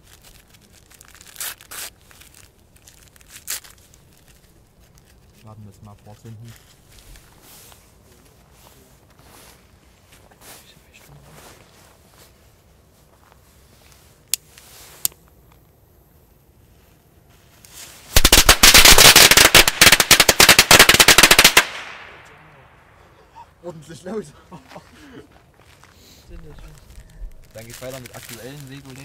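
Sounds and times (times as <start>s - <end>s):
firecrackers going off: 18.0s - 22.6s.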